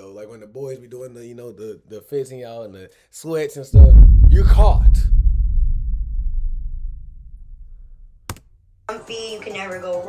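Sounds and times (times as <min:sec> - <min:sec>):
low rumble: 0:03.8 - 0:08.2
woman's voice: 0:08.9 - 0:10.0.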